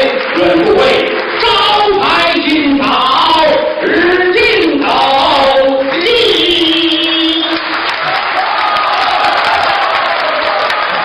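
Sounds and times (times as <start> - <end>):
audience applauding: 0.0 - 2.2, 5.8 - 11.0.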